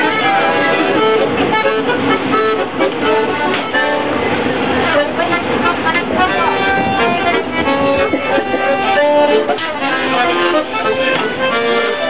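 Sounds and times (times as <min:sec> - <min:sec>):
accordion playing: 0:00.0 - 0:12.0
people talking: 0:00.0 - 0:12.0.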